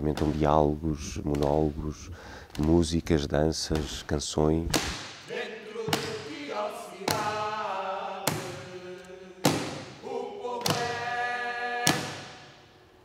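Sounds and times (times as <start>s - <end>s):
voices chanting long notes: 5.3s - 12.6s.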